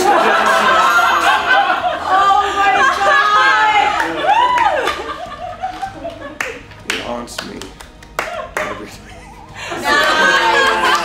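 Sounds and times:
hand claps: 4.0 - 8.9
soft laughter and chuckling: 8.8 - 11.0.

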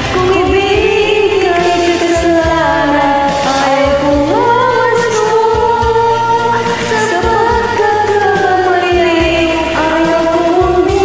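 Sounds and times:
backing track with beat: 0.0 - 11.0
women singing: 0.0 - 11.0.

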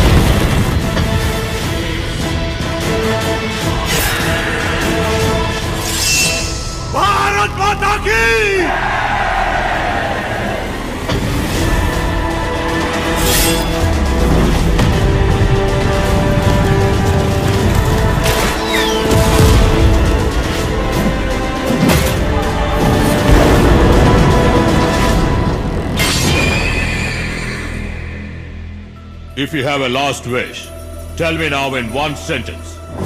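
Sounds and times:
sustained music tones: 0.0 - 33.0.

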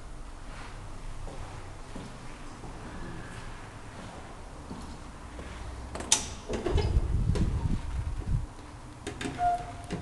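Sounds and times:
low rumbling thumps: 6.7 - 8.5.

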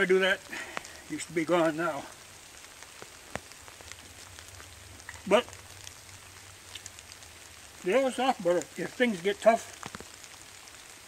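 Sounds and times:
faint ticks of raindrops: 0.0 - 11.0
light drizzle falling: 0.0 - 11.0.

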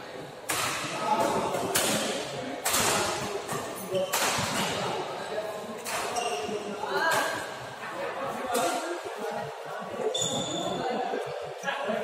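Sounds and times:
voices echoing in hall: 0.0 - 12.0
shoe squeaking on court: 3.8 - 4.7, 5.8 - 6.7, 10.0 - 10.8.

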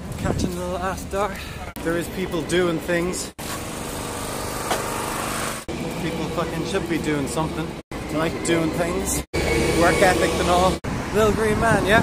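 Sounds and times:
construction machinery engine droning: 1.5 - 10.8.

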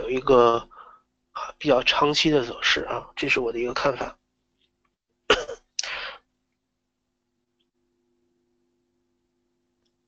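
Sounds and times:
man coughing and clearing throat: 5.3 - 6.2.

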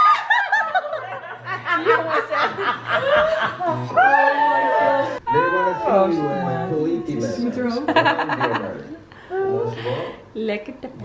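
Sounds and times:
women laughing: 0.0 - 5.6, 7.7 - 10.2.

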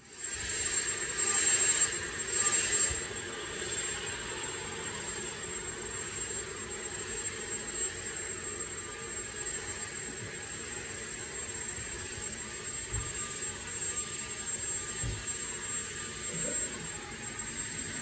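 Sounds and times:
vacuum cleaner running: 0.0 - 18.0.

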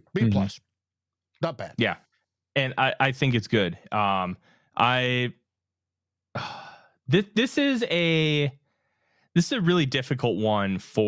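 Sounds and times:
man speaking: 0.0 - 0.6, 1.4 - 5.5, 7.1 - 8.6, 9.4 - 11.0
man sighing: 6.4 - 7.0.

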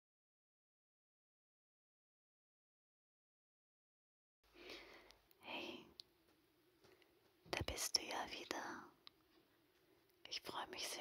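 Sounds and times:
faint steady hum: 4.5 - 11.0
woman whispering: 5.4 - 6.0, 7.5 - 9.0, 10.2 - 11.0.

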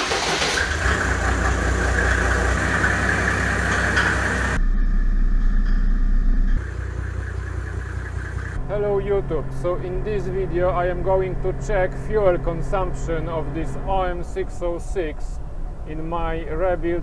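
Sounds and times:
diesel engine idling: 0.0 - 5.4, 6.0 - 17.0.

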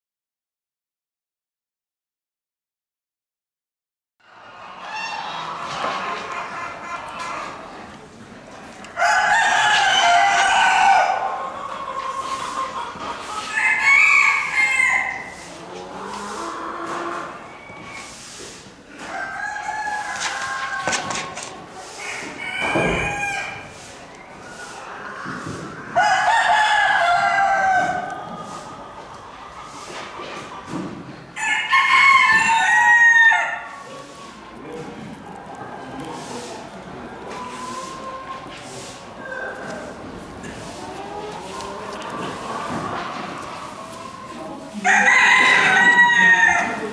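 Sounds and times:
rooster crowing: 13.5 - 15.3, 22.2 - 23.6, 31.4 - 33.7, 44.8 - 46.9.

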